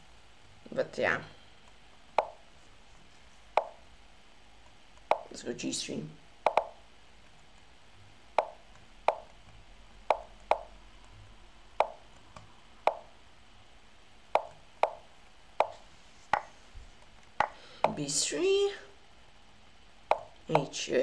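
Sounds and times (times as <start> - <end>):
sharp wooden clicks: 2.2 - 2.4, 5.0 - 5.3, 6.4 - 7.6, 8.4 - 10.8, 11.8 - 13.1, 14.3 - 16.5, 17.3 - 18.0, 20.1 - 20.7.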